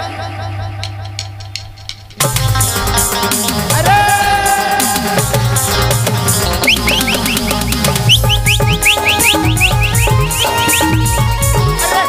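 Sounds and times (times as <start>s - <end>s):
drum and bass beat: 2.2s - 12.0s
high-pitched rising chirps: 6.4s - 11.2s.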